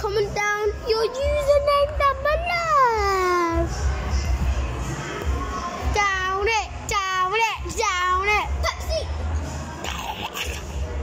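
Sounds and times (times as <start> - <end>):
child singing wordless tune: 5.8 - 9.1.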